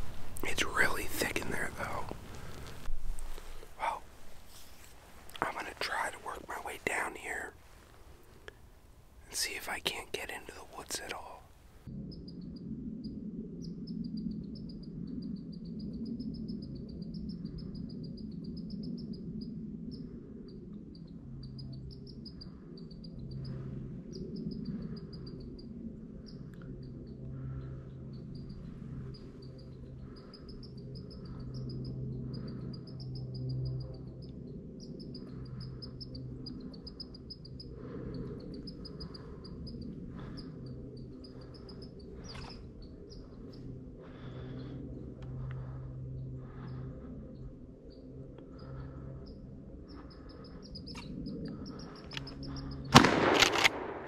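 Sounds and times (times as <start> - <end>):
squirrel chirping: 34.8 - 43.6, 49.2 - 52.9.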